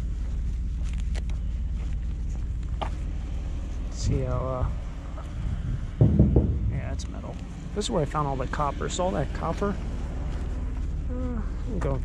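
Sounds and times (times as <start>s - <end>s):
vehicle rumbling along street: 0.0s - 12.0s.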